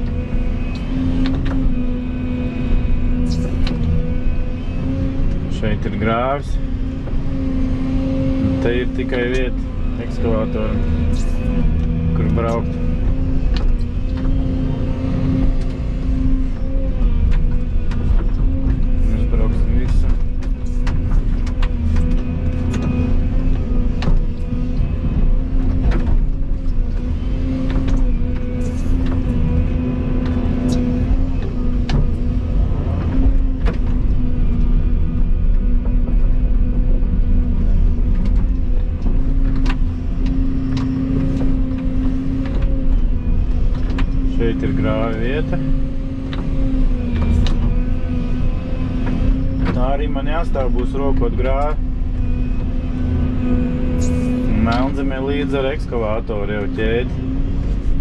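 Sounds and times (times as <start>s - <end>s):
excavator engine low hum: 0.0s - 58.0s.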